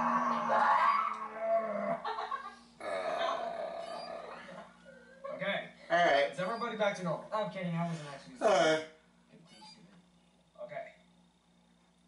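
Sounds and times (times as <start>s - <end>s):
person growling vocal noise: 0.0s - 2.0s, 2.8s - 4.5s.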